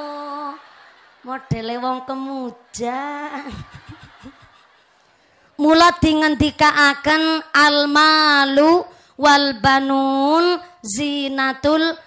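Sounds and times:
woman laughing: 2.7 - 4.8.

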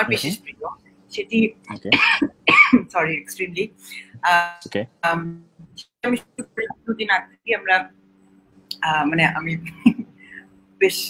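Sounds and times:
person talking over video call: 0.0 - 2.2, 2.9 - 7.3
faint low hum: 0.0 - 11.0.

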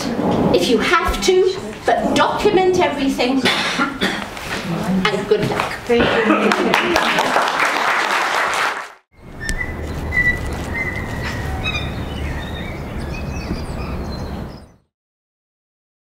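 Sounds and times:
audience applauding: 6.4 - 9.0
outdoor background rumble: 9.2 - 14.7
birds chirping and whistling: 9.2 - 14.9.

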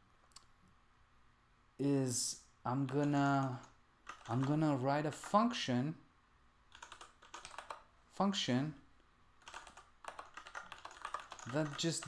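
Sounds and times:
typing on computer keyboard: 2.8 - 4.6, 6.7 - 7.8, 9.4 - 12.0.

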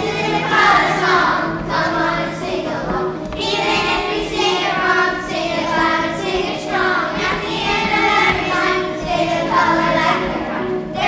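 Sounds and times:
children singing in unison: 0.0 - 11.0
musical accompaniment: 0.0 - 11.0.

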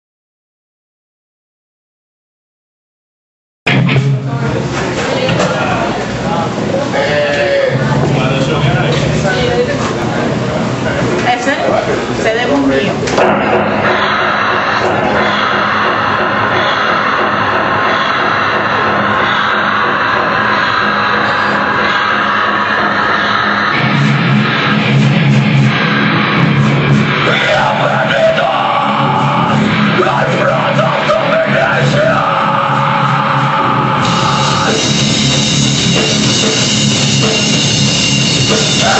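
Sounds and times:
band amplifier noise: 3.7 - 38.9
steady low hum-like note: 3.7 - 38.9
harsh vocal scream: 13.8 - 24.8, 27.1 - 35.1, 38.6 - 38.9.

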